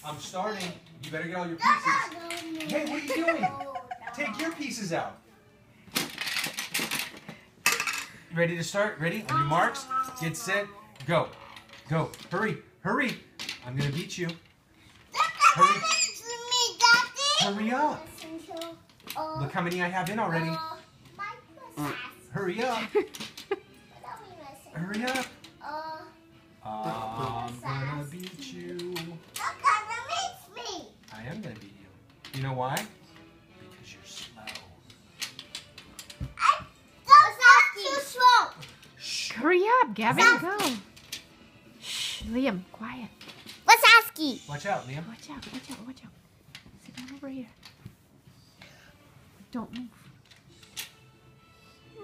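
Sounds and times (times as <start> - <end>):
plastic game pieces clattering: 6.0 - 8.1.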